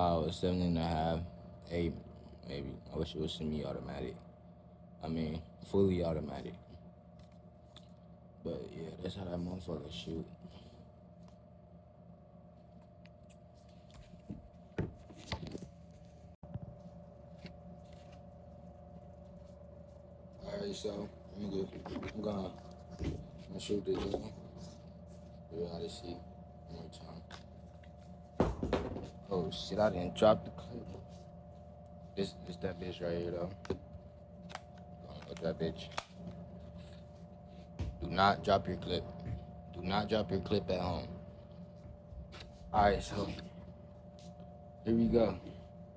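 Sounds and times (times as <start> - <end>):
low room hum: 0.0 - 45.9.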